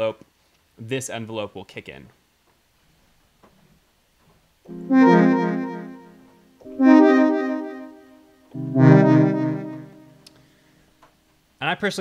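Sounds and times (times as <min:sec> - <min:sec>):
synthesizer short notes: 0:04.7 - 0:10.3.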